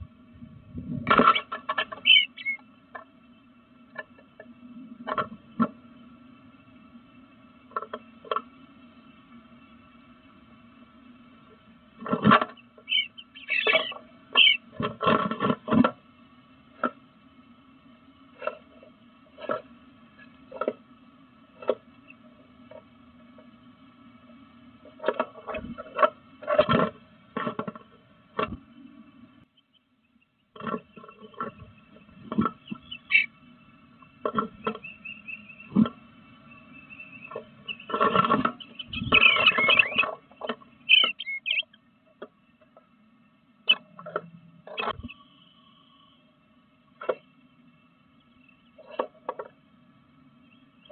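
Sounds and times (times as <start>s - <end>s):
steady electronic hum: 0.0s - 50.9s
short high bird chirps: 2.0s - 2.6s, 12.8s - 14.6s, 38.6s - 40.1s, 40.9s - 41.7s.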